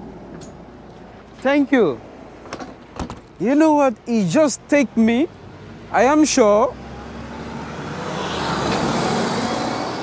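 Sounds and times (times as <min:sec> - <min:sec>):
bus engine and tyre noise: 0:00.0 - 0:10.0.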